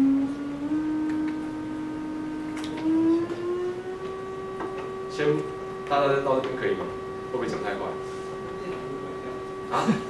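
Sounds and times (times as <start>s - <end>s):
electronic tone rising in pitch: 0.0s - 9.8s.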